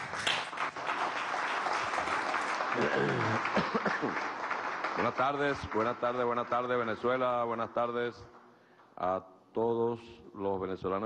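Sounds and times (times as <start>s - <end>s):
roomful of people applauding: 0.0s - 9.0s.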